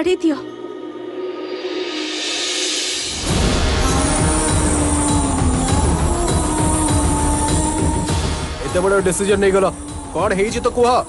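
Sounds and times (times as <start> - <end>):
low pulsing rumble: 3.1 - 10.1.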